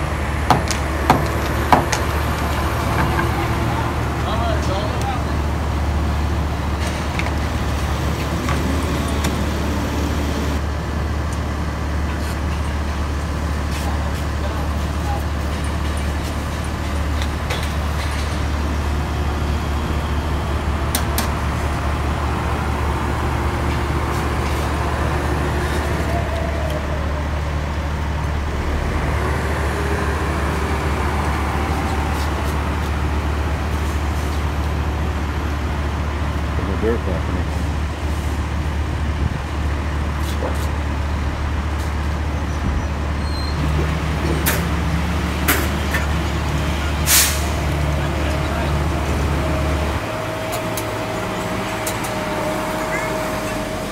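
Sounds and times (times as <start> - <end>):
heavy equipment droning: 0.0 - 42.4, 43.7 - 53.9.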